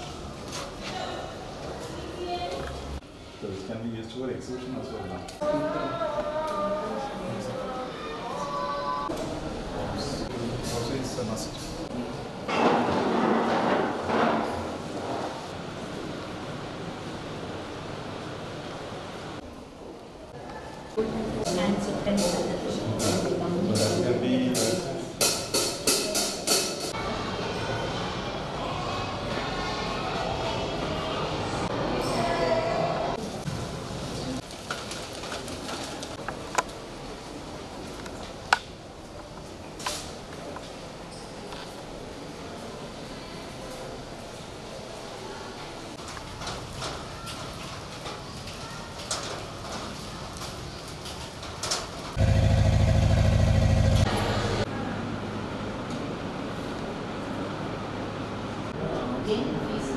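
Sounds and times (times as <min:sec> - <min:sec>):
drum and cymbal hits: 0:24.6 - 0:27.0
generator engine drone: 0:52.2 - 0:55.4.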